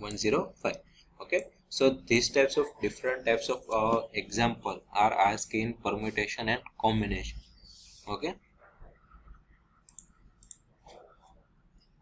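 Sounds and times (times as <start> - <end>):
faint mouse clicks: 9.8 - 10.7.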